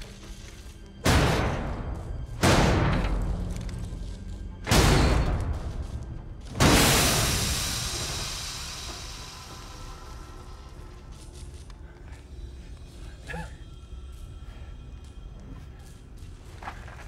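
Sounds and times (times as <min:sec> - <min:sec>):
deep booming impacts: 0:04.6 - 0:09.2.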